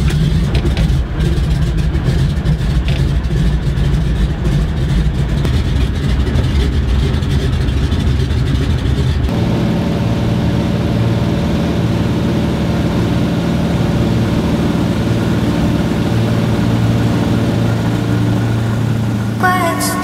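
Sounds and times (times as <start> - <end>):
propeller plane engine drone: 0.0 - 20.0.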